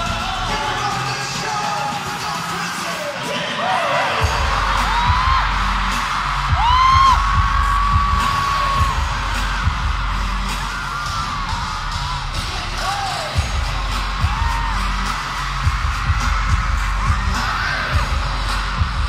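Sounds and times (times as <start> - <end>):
pulsing bass beat: 4.2 - 19.0.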